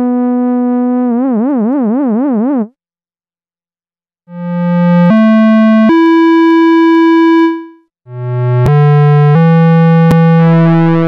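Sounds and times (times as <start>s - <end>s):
square-wave synthesizer line: 0.0s - 2.8s, 4.3s - 11.0s.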